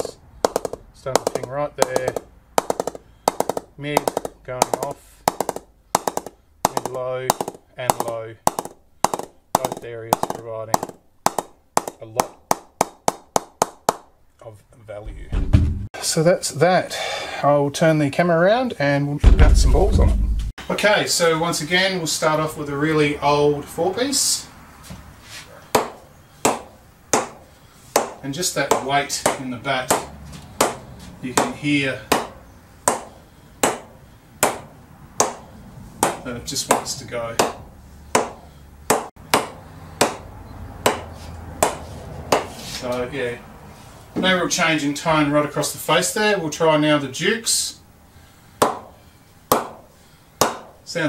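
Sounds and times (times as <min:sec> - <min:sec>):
ball knocking on cricket bat: 0:00.0 - 0:14.1.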